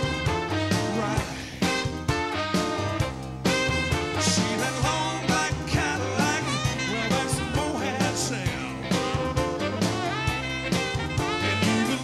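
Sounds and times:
live band with electric keyboard: 0.0s - 12.0s.

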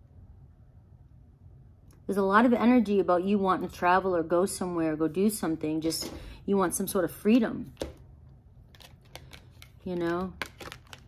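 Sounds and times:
cards clicking and tapping: 8.7s - 11.0s.

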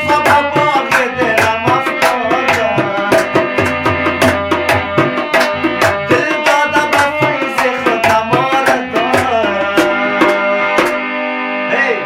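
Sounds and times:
tabla playing quick rhythm: 0.0s - 11.3s
sustained harmonium notes: 0.0s - 12.0s.

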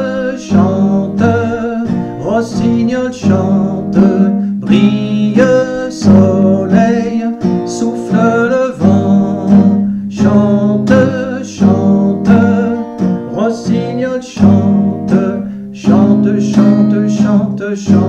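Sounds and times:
man singing: 0.0s - 18.0s
strummed acoustic guitar: 0.0s - 18.0s.

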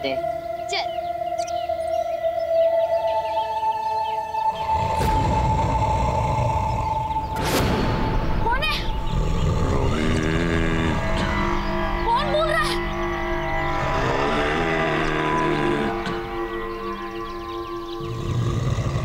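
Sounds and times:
low rumbling drone: 0.0s - 19.0s
whooshing hits: 4.7s - 9.3s.

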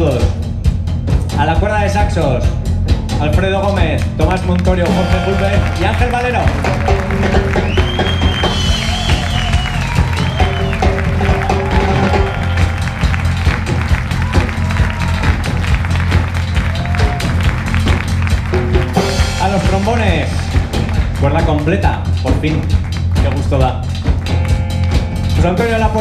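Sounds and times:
big band playing: 0.0s - 26.0s.

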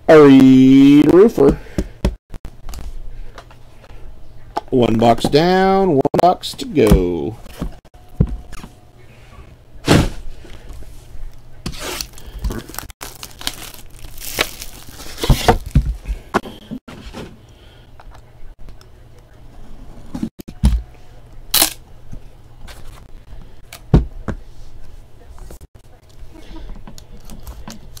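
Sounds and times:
plastic wrap tearing and crinkling: 11.7s - 15.8s.

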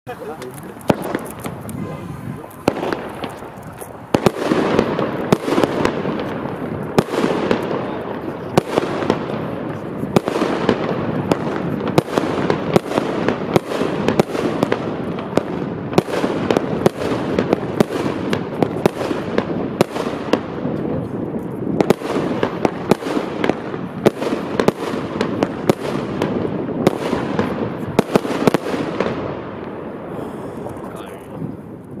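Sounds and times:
fireworks launching and bursting: 0.1s - 32.0s.

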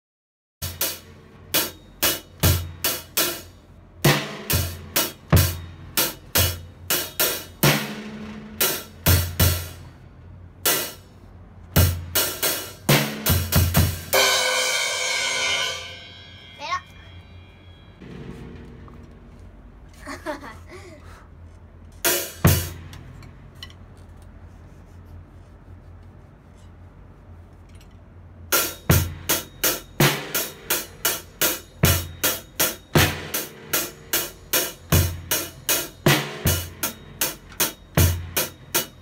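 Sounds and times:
acoustic drum kit playing: 0.6s - 10.0s, 10.6s - 17.2s, 18.0s - 19.9s, 22.0s - 23.6s, 28.4s - 39.0s
cymbal crash ringing: 14.1s - 19.3s.

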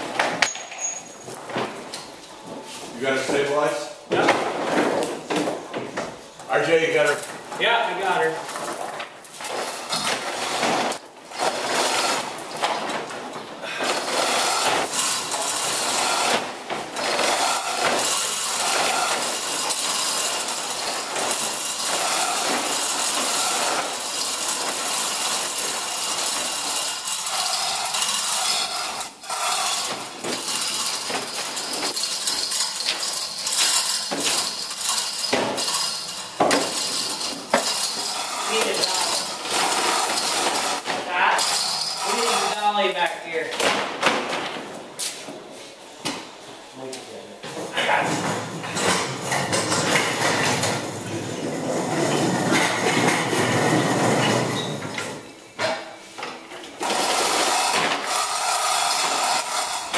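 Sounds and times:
chain hoist rattling and clinking: 0.4s - 1.4s, 17.0s - 40.8s.

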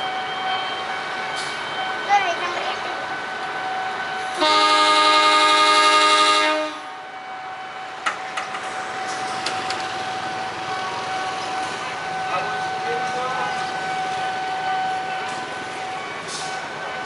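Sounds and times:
locomotive horn blast: 4.3s - 6.9s.

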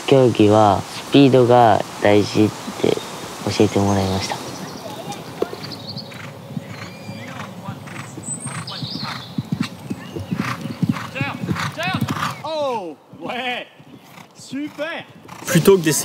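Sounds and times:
horse hoofbeats on sand: 4.5s - 16.0s
horse whinnying: 6.1s - 12.5s.

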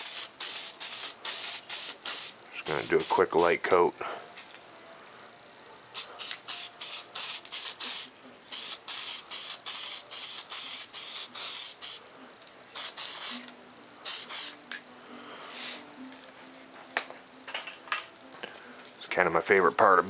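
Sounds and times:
spray paint can hissing: 0.0s - 3.6s, 6.0s - 12.0s, 12.8s - 14.6s.

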